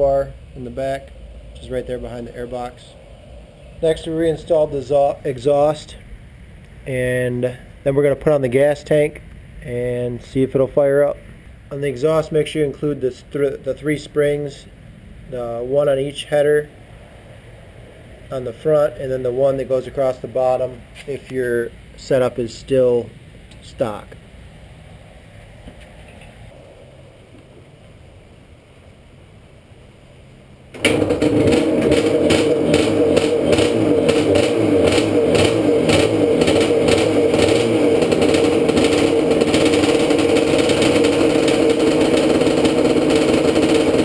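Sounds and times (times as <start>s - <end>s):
two-stroke engine starting and running: 30.7s - 44.0s.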